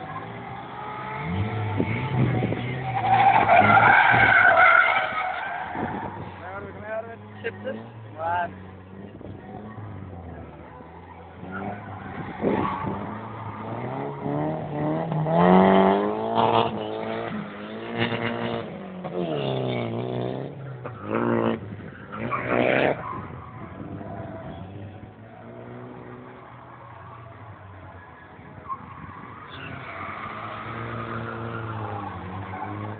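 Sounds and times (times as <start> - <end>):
car engine revving hard: 0.0 - 4.4, 11.4 - 26.4
tyre squeal: 1.9 - 6.4, 28.0 - 32.9.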